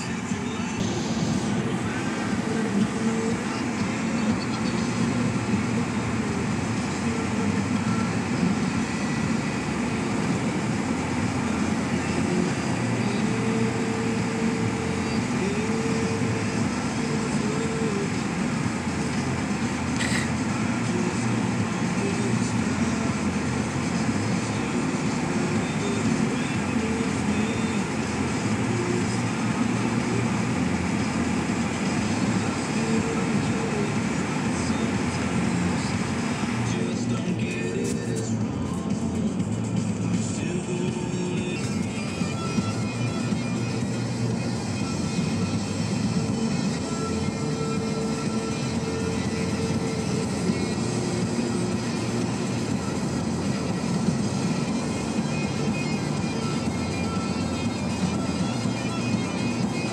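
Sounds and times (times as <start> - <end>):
car cabin road and engine noise: 0.0 - 59.9
tyres on slushy road: 0.0 - 59.9.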